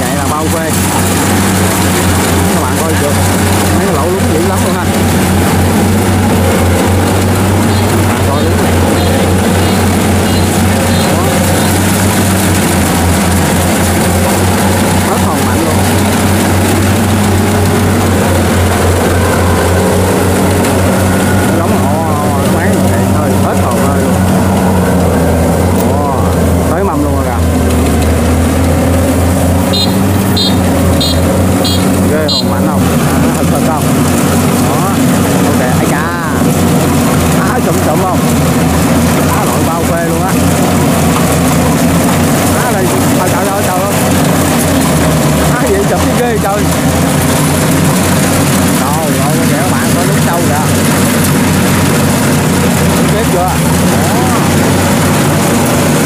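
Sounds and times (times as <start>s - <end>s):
combine harvester diesel engine: 0.0s - 56.0s.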